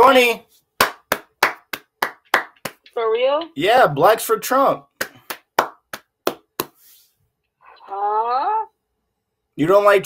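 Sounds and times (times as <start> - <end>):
person clapping hands: 0.8 - 3.0, 4.9 - 6.9.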